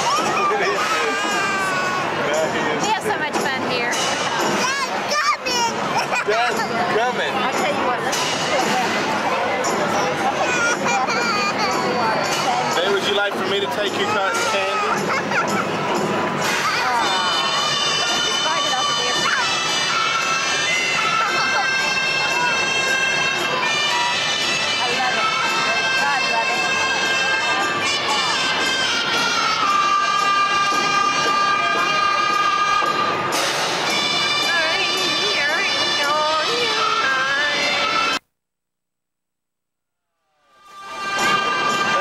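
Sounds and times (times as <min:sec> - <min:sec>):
circus band music: 0:00.0 - 0:38.2, 0:40.7 - 0:42.0
crowd chatter: 0:00.0 - 0:38.2, 0:40.7 - 0:42.0.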